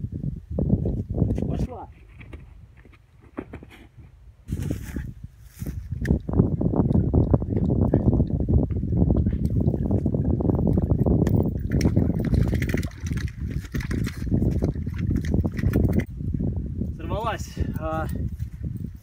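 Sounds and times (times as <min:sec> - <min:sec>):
wind buffeting microphone: 0:00.0 - 0:19.0
reeds and grass rustling: 0:01.8 - 0:06.1.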